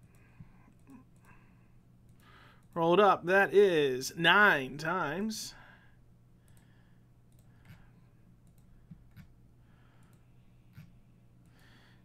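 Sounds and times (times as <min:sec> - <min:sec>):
low steady hum: 0:00.0 - 0:12.0
computer mouse clicks: 0:07.3 - 0:09.3, 0:10.0 - 0:11.6.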